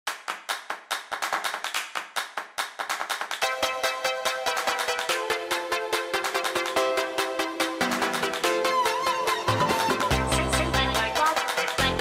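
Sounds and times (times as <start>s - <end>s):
sharp hand claps: 0.1s - 3.5s.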